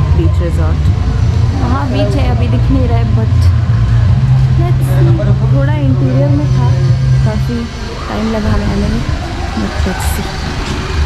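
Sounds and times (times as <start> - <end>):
loud low rumble: 0.0 - 11.0
voices talking: 0.0 - 11.0.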